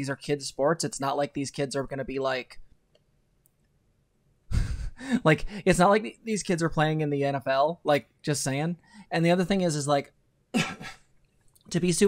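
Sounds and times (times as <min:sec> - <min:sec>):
breathy sigh: 0:04.5 - 0:05.6.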